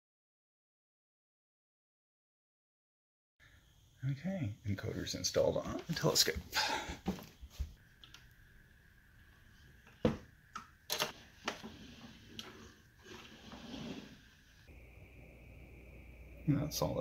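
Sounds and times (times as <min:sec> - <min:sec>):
faint high whine: 0:07.4 - 0:17.0.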